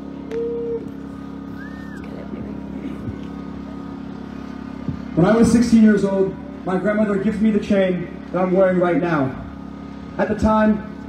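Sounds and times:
motor humming: 0.0 - 8.6
short held tone: 0.2 - 2.1.

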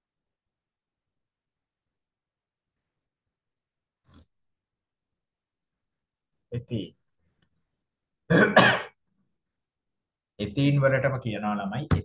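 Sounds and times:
man clearing his throat: 8.3 - 9.0.

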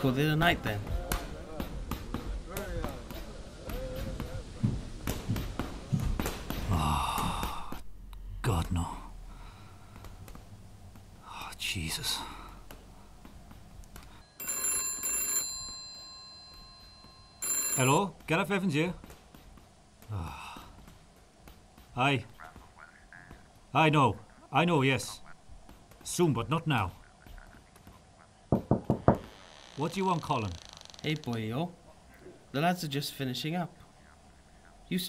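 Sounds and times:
telephone bell ringing: 14.2 - 18.2
knuckles knocking on wooden door: 28.5 - 29.3.

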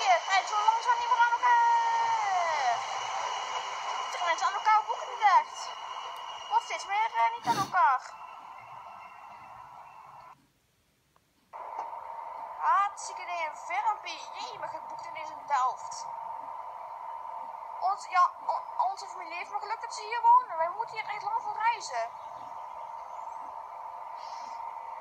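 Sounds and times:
indistinct voices: 0.0 - 9.2
electric train hum: 0.0 - 10.4, 11.6 - 25.0.

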